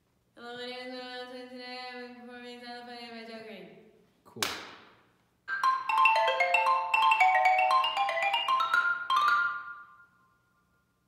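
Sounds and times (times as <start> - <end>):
marimba notes struck with mallets: 5.5 - 10.0.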